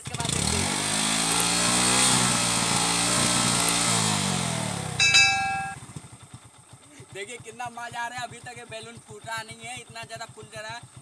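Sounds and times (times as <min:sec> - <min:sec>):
motorcycle engine revving and idling: 0:00.0 - 0:11.0
bright ringing chime: 0:05.0 - 0:05.8.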